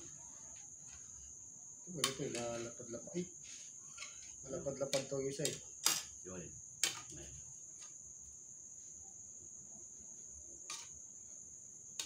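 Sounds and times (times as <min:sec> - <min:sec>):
crickets chirring: 0:00.0 - 0:12.0.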